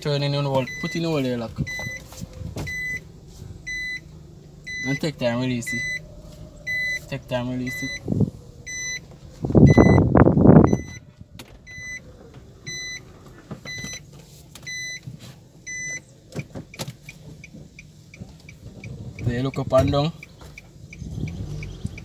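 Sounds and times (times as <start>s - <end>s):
car warning chime beeping: 0.4s - 11.0s, 11.6s - 22.0s.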